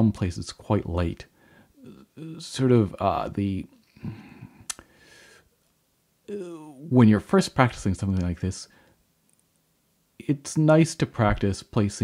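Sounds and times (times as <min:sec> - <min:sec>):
faint breath: 0:01.4 - 0:01.8, 0:03.9 - 0:05.6, 0:08.7 - 0:09.0
mouth click: 0:04.6 - 0:04.9.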